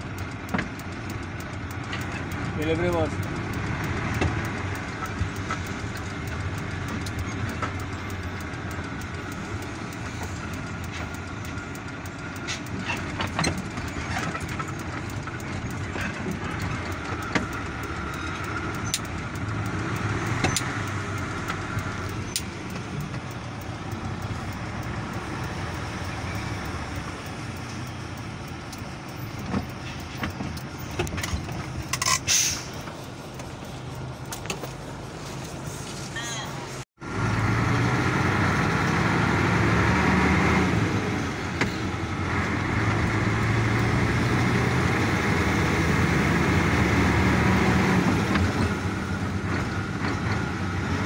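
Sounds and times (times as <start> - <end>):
vehicle engine and road noise: 0.0 - 51.0.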